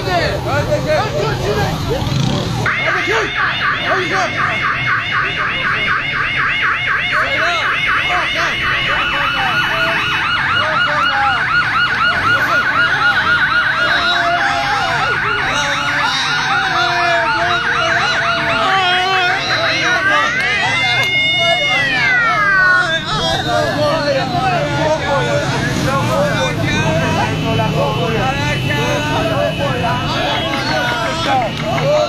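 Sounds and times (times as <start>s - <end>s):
voices: 0.0s - 32.0s
siren yelping: 1.2s - 32.0s
steady siren tone: 2.6s - 25.9s.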